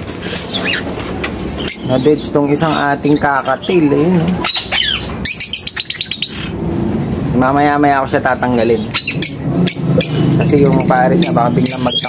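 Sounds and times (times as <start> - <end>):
bird chirp: 0.2 - 6.8, 7.7 - 12.0.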